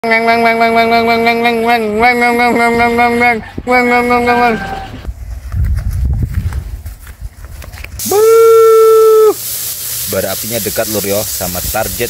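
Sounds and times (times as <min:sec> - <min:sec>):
held voice-like tone: 0:00.0 - 0:05.1
loud nasal call: 0:08.0 - 0:09.4
meat sizzling on a grill: 0:08.0 - 0:12.0.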